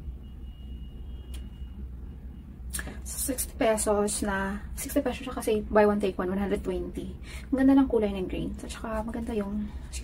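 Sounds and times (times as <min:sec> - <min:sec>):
faint high-pitched tone: 0:00.0 - 0:02.6.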